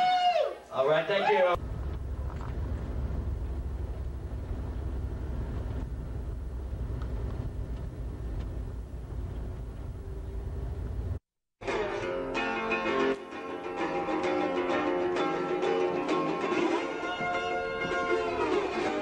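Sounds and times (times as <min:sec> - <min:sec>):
traffic rumble: 0:01.6 - 0:11.2
plucked guitar: 0:11.6 - 0:19.0.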